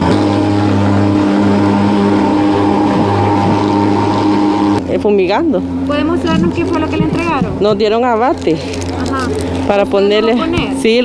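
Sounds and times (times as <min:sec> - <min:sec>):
fogging machine droning: 0:00.0 - 0:11.0.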